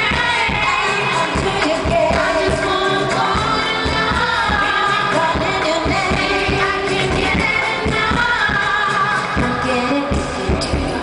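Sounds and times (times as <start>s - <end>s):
live pop music: 0.0s - 11.0s.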